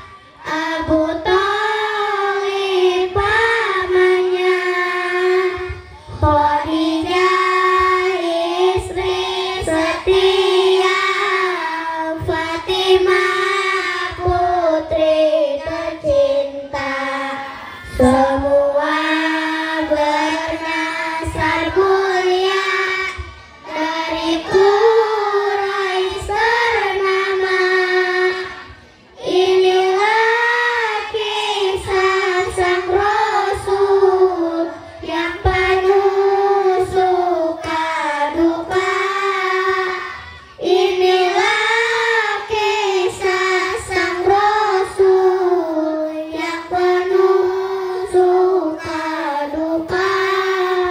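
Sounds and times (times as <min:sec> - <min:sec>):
children singing in unison: 0:00.0 - 0:50.9.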